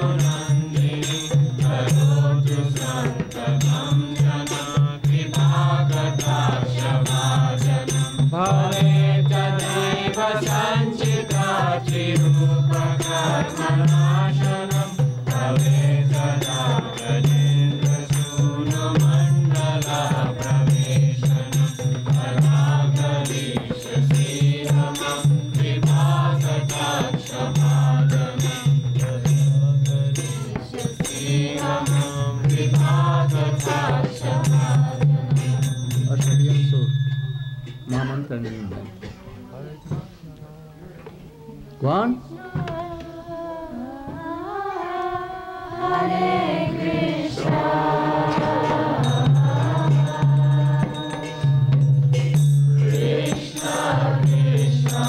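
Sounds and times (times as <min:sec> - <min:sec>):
group chanting: 0:00.0 - 0:35.9, 0:42.3 - 0:55.0
hand drum rhythm: 0:00.0 - 0:37.0, 0:44.8 - 0:55.0.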